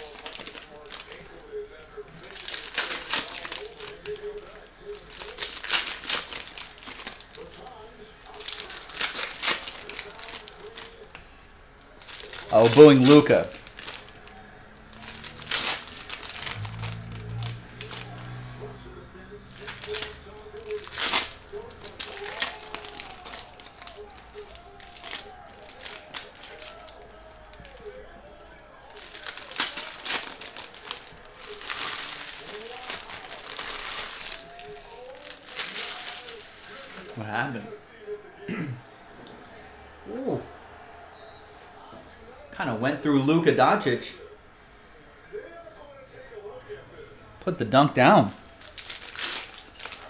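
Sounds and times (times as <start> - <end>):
foil wrappers crinkling and tearing: 0.0 - 11.2, 11.8 - 18.8, 19.4 - 37.8, 48.1 - 50.0.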